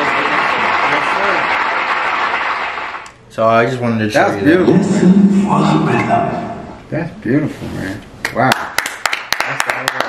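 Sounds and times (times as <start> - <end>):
audience applauding and cheering: 0.0 - 3.1.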